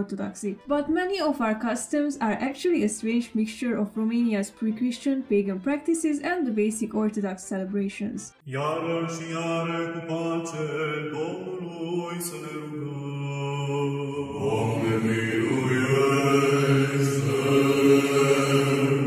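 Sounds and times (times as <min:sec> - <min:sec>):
voices chanting long notes: 0:08.5 - 0:19.0.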